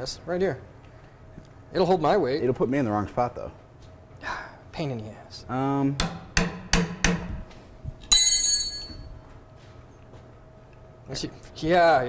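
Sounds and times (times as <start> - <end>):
metal tool clanging on metal: 8.1 - 9.2.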